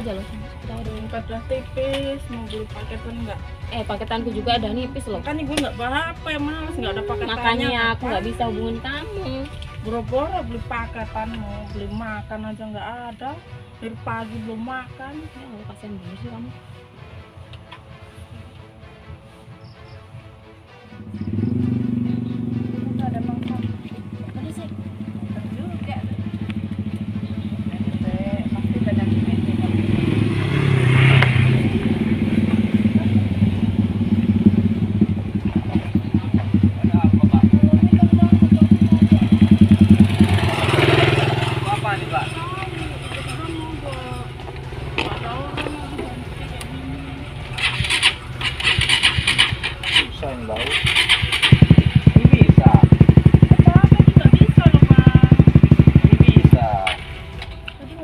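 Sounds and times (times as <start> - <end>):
motorcycle engine idling: 21.0 - 58.0
motorcycle engine revving: 21.0 - 58.0.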